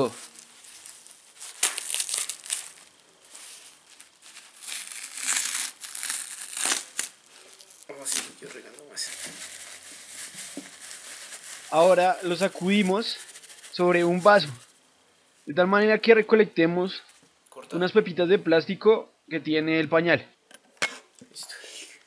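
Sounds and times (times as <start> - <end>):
padding tearing: 0.0 - 8.6
plastic diaper crinkling: 0.0 - 14.7.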